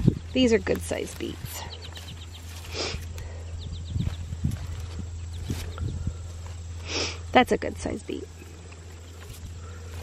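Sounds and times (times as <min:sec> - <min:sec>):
soft low thumps: 0:00.0 - 0:06.9
rustling of leaves and soil: 0:00.0 - 0:10.0
steady low hum: 0:00.0 - 0:10.0.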